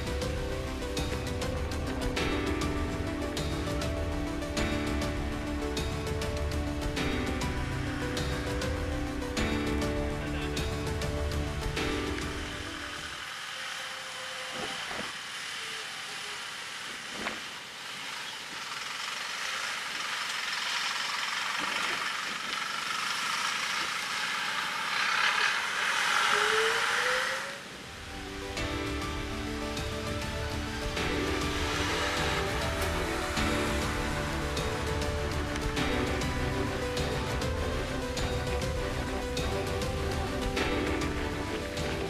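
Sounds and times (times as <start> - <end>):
background music: 0.0 - 13.9, 24.9 - 42.0
minibus diesel engine passing: 0.0 - 42.0.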